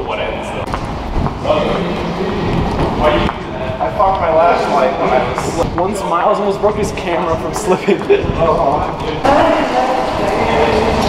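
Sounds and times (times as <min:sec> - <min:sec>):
men talking: 0:01.4 - 0:11.0.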